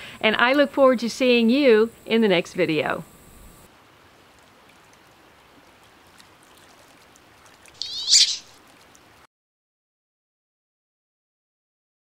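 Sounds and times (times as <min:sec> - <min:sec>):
duck squealing call: 0:07.8 - 0:08.5
faint hiss: 0:07.8 - 0:08.6.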